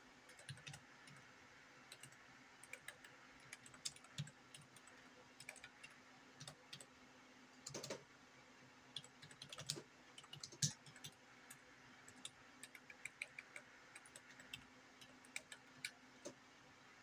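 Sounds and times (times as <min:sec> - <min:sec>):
faint steady hum: 0:00.0 - 0:17.0
computer keyboard typing: 0:00.3 - 0:01.3, 0:01.9 - 0:06.9, 0:07.6 - 0:08.0, 0:08.9 - 0:16.4.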